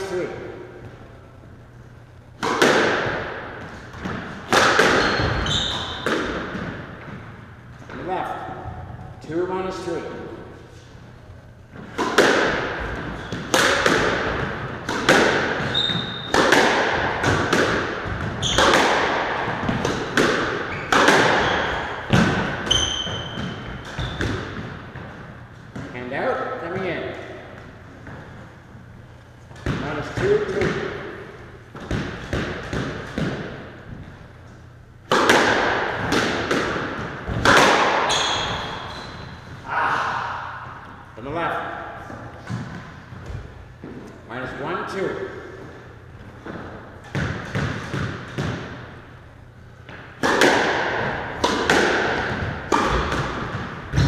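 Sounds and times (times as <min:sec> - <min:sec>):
squash ball hits echoing: 0:02.2 - 0:10.0, 0:11.7 - 0:28.4, 0:29.5 - 0:34.2, 0:35.0 - 0:44.1, 0:45.0 - 0:49.2, 0:49.8 - 0:54.0
shoes squeaking on hardwood floor: 0:05.0 - 0:06.0, 0:15.6 - 0:16.3, 0:18.4 - 0:18.7, 0:20.7 - 0:21.8, 0:22.6 - 0:24.5, 0:38.1 - 0:39.5.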